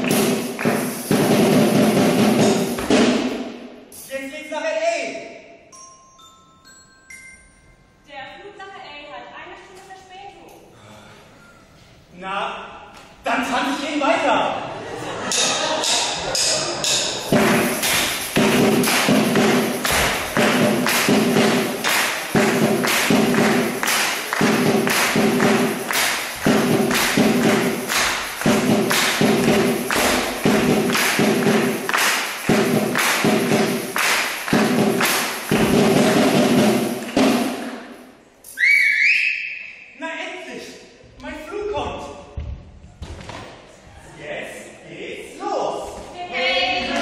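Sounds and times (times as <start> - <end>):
stamps and claps on wooden floor: 17.4 - 35.8
high rising whistle: 38.5 - 39.9.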